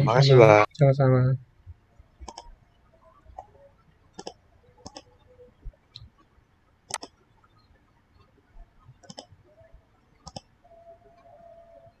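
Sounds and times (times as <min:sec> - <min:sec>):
computer mouse double-clicks: 0:02.2 - 0:02.5, 0:04.2 - 0:05.1, 0:06.9 - 0:07.2, 0:09.0 - 0:09.4, 0:10.2 - 0:10.5.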